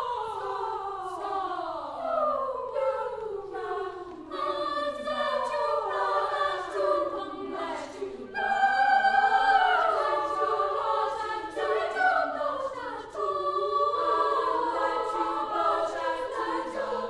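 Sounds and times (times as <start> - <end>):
girls' choir singing: 0.0 - 17.0.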